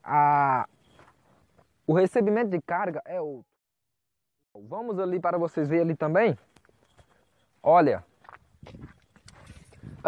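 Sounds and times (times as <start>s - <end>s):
footsteps on grass and dirt: 5.5s - 10.0s.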